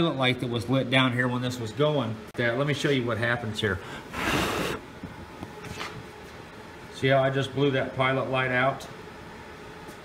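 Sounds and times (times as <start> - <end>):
person blowing a puff of breath: 3.8 - 4.8.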